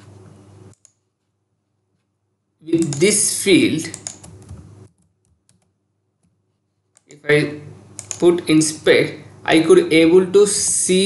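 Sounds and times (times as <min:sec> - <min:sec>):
keyboard keys clicking: 0:03.9 - 0:06.4, 0:08.0 - 0:08.3.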